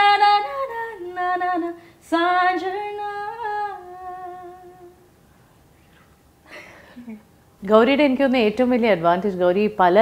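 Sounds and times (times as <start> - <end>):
woman singing wordless melody: 0.0 - 5.2.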